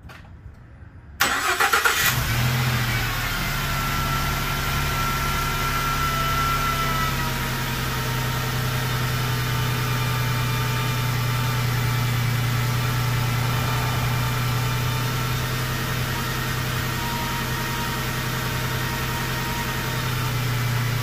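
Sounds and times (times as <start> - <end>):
van engine cranking and idling: 1.2 - 21.0.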